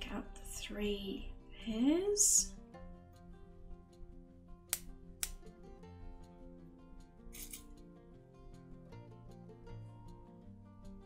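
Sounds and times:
soft background music: 0.0s - 11.0s
metallic rasp of pliers: 7.3s - 7.7s
pliers clicking: 7.3s - 7.7s.

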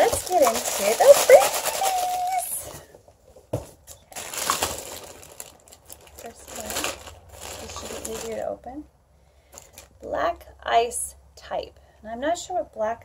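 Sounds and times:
plastic bag crinkling: 0.0s - 2.8s, 4.1s - 8.6s, 9.6s - 10.0s.

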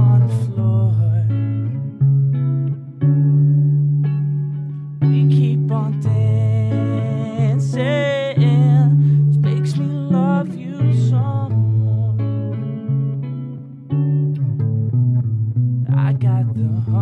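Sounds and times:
picked guitar notes: 0.0s - 17.0s.

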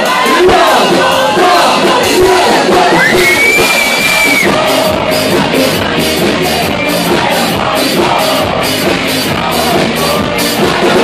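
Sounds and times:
crowd shouting and singing along: 0.0s - 11.0s
loud live concert music: 0.0s - 11.0s
high whistle: 3.0s - 4.5s.

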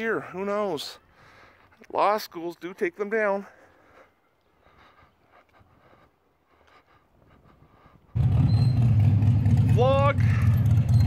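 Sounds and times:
faint outdoor ambience: 0.0s - 11.0s
vehicle engine rumbling: 7.7s - 11.0s.

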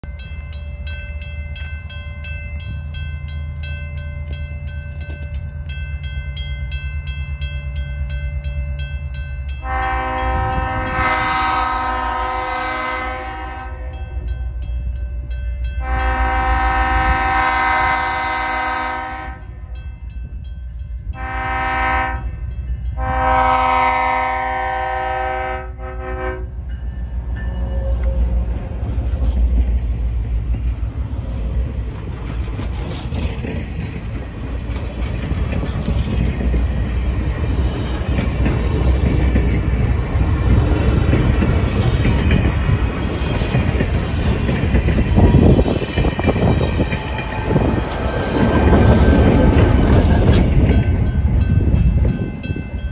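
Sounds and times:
crossing bell ringing: 0.0s - 28.6s, 35.0s - 52.9s
train wheels rumbling on rail: 0.0s - 52.9s
locomotive horn: 9.6s - 14.3s, 15.8s - 19.6s, 21.1s - 26.6s.

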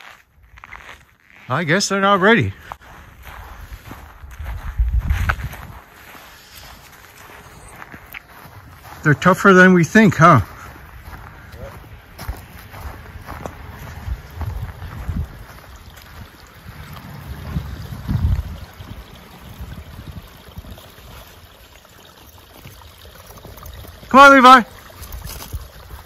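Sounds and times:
wind buffeting microphone: 2.9s - 9.0s, 10.4s - 21.6s.

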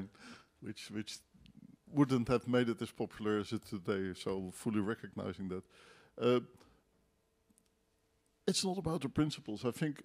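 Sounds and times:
faint steady hum: 0.0s - 10.0s
faint clicks: 7.5s - 8.4s.

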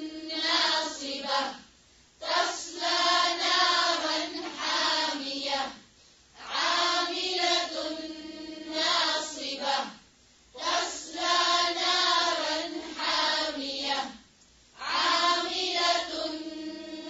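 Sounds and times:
melodic religious chanting: 0.0s - 17.0s.

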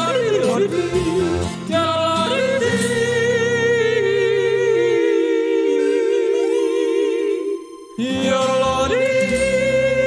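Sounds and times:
gospel accompaniment: 0.0s - 10.0s.

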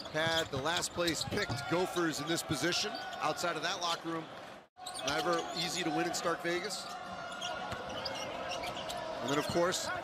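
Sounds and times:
arena crowd noise: 0.1s - 10.0s.

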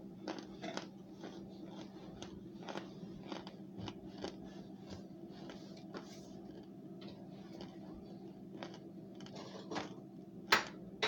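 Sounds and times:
chewing crunchy starch: 0.0s - 9.4s.

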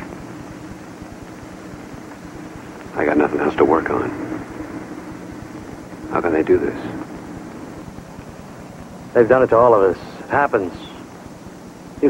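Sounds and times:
faint hum: 0.0s - 12.0s
low rumble and hiss: 0.0s - 12.0s.

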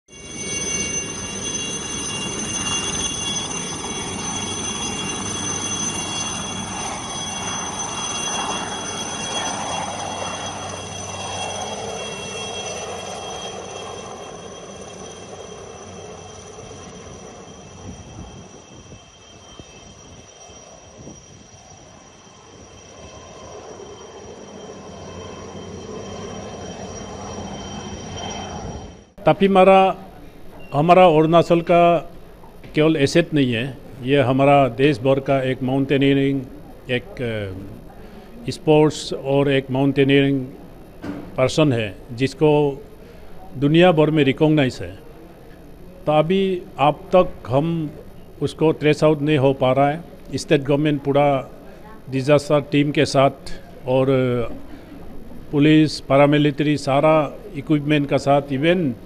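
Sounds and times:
helicopter rotor noise: 0.1s - 29.2s, 31.0s - 59.0s
helicopter turbine whine: 0.1s - 59.0s.

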